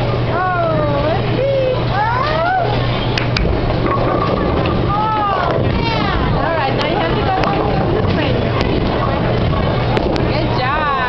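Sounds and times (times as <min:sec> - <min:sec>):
bowling balls rolling: 0:00.0 - 0:11.0.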